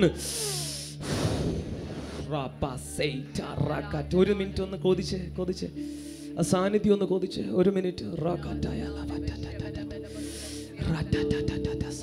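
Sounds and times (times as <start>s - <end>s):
man breathing into microphone: 0.2s - 2.3s, 5.8s - 6.4s, 10.1s - 10.7s.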